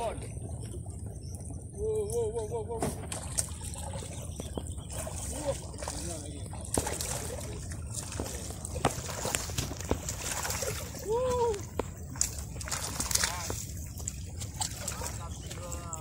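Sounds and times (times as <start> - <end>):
sea water sloshing against rocks: 0.0 - 16.0.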